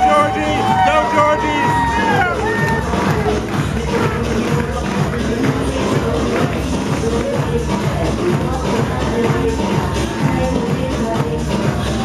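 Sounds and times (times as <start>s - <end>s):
loud music with steady beat: 0.0s - 12.0s.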